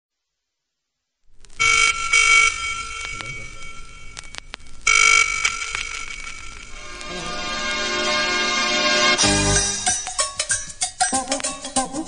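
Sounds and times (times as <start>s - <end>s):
telephone ringing: 1.6s - 7.1s.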